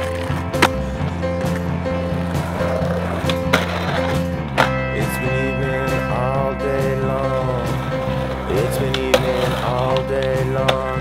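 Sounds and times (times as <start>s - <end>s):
skateboard hitting concrete: 0.0s - 0.8s, 1.4s - 4.8s, 8.2s - 10.9s
skateboard trucks grinding ledge: 0.0s - 4.8s, 7.3s - 11.0s
music track: 0.0s - 11.0s.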